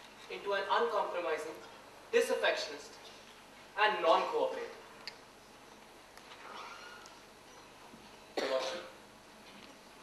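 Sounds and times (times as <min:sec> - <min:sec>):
person coughing: 0:08.4 - 0:09.0.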